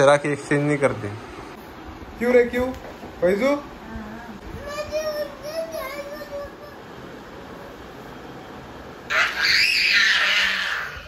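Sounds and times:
child shrieking: 9.1 - 11.0.

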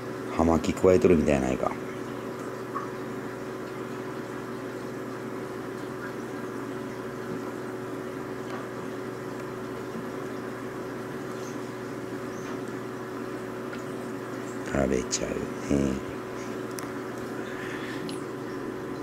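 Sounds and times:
low motor hum: 0.0 - 19.0.

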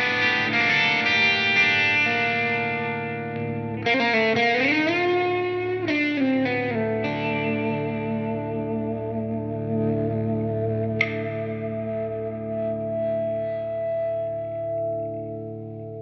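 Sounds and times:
electric guitar chord ringing: 0.0 - 16.0.

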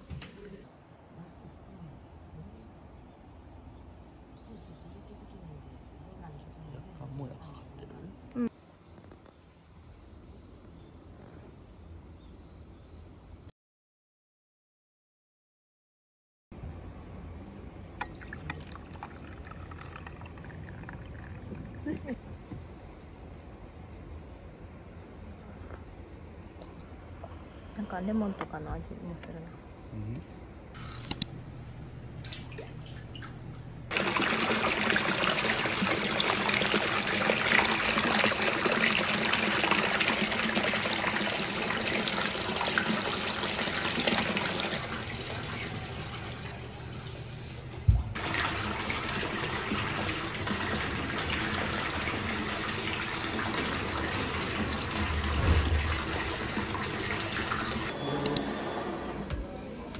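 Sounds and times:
running water splashing: 18.0 - 21.8, 32.1 - 57.9.

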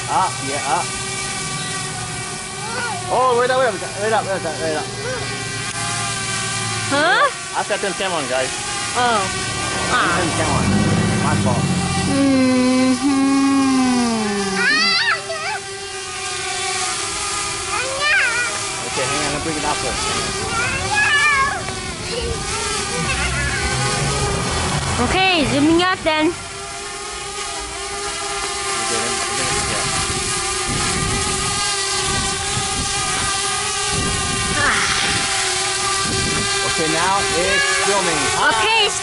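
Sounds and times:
drone propellers whining: 0.0 - 39.0
person saying ah: 12.1 - 15.0
wind gusts on microphone: 29.5 - 37.2.

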